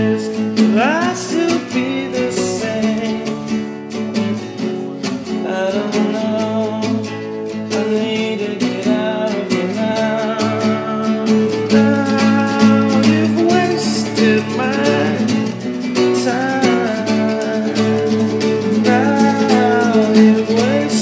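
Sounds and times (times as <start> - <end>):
person singing: 0.0 - 21.0
strummed acoustic guitar: 0.0 - 21.0.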